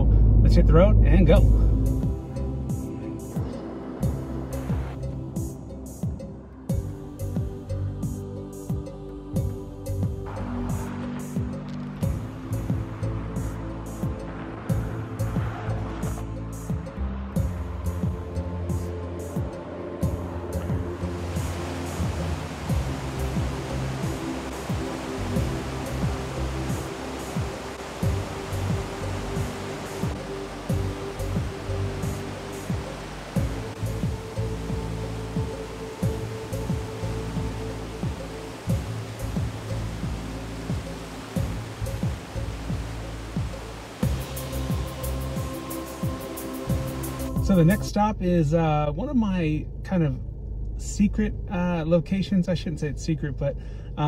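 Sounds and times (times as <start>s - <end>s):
background music sustained notes: 0.0s - 49.6s
floodwater rushing through creek: 9.4s - 47.5s.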